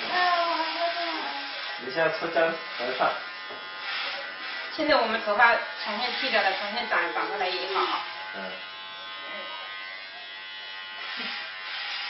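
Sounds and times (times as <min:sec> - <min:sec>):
electric hair clippers buzzing: 0:00.0 - 0:12.0.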